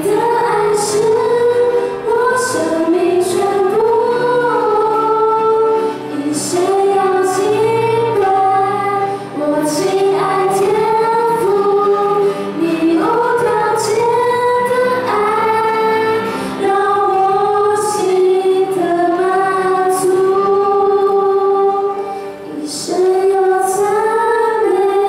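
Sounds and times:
upright piano accompaniment: 0.0 - 25.0
women singing worship song: 0.0 - 25.0.

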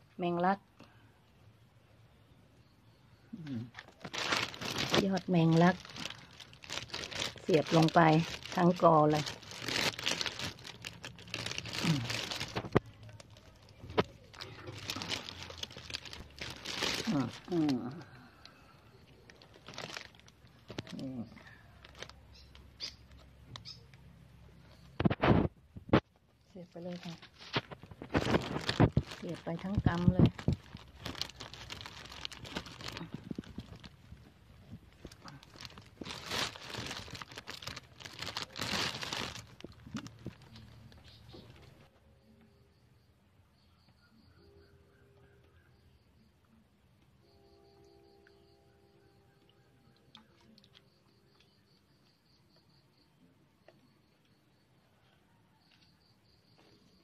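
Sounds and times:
woman speaking: 0.2 - 0.6, 4.8 - 6.0, 7.4 - 9.4, 17.0 - 18.2, 26.5 - 27.3, 29.2 - 30.4
plastic sheeting crinkling: 3.7 - 18.1, 19.2 - 22.2, 26.9 - 41.9
faint rustling: 27.0 - 41.9.

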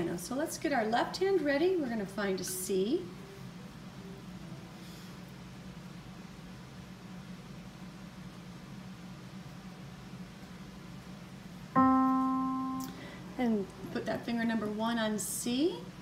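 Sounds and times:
steady low hum: 0.0 - 16.0
piano note ringing: 11.8 - 13.2.

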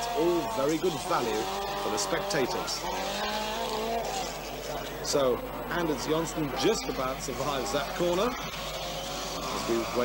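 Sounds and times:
rally car engine running hard: 0.0 - 10.0.

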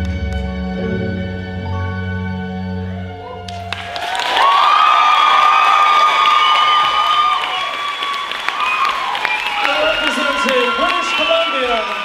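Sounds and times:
high whoops: 3.4 - 12.0
audience applauding: 3.5 - 12.0.

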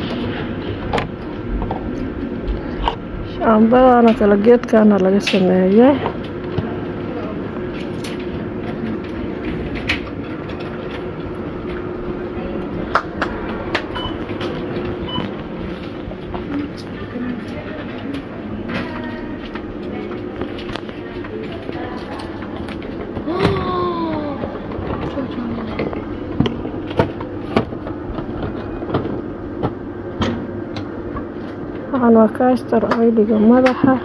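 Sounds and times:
steady machine hum: 0.0 - 34.0.

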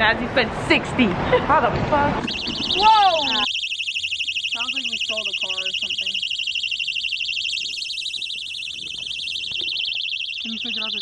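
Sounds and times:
rapid high-pitched car alarm beeping: 2.2 - 11.0.

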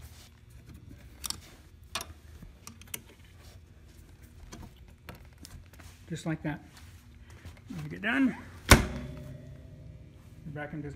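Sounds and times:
faint low hum: 0.0 - 10.9.

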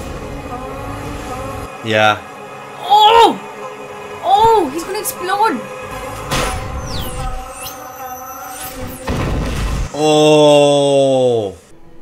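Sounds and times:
dramatic film music: 0.0 - 11.0
hit effect: 6.1 - 7.9, 8.5 - 10.0.

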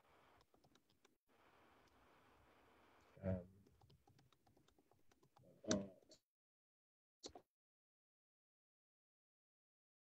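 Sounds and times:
typing on computer keyboard: 3.7 - 5.4.

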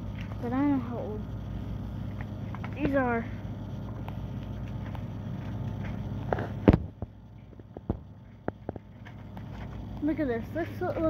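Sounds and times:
phone handling rumble: 3.8 - 10.1.

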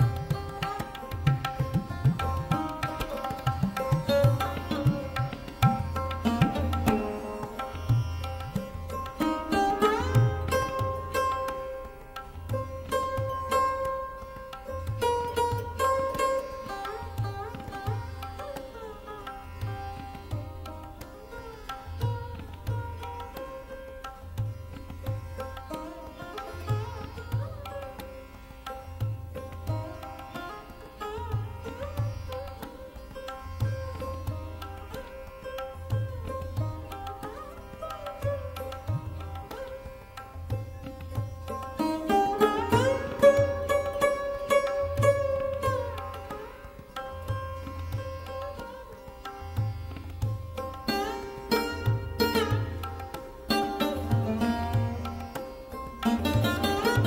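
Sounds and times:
sarod plucked notes: 0.0 - 57.0
tabla drums: 0.0 - 57.0.

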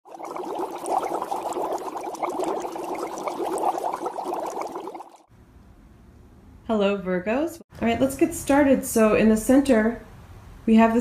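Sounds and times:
water trickling and bubbling: 0.0 - 5.3.

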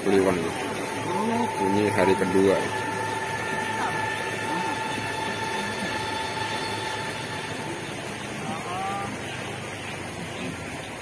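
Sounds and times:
distant murmuring voices: 0.0 - 11.0
thin high steady tone: 0.0 - 11.0.

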